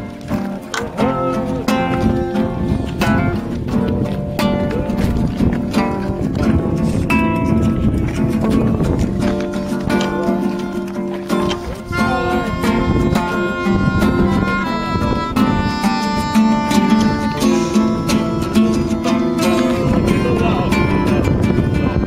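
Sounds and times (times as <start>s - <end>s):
held keyboard notes: 0.0s - 22.0s
strummed acoustic guitar: 0.0s - 22.0s.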